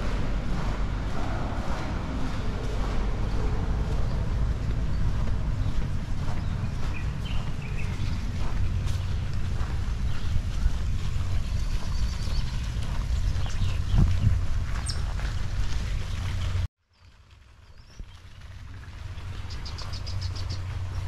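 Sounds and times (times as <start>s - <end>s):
wind buffeting microphone: 0.0s - 16.7s.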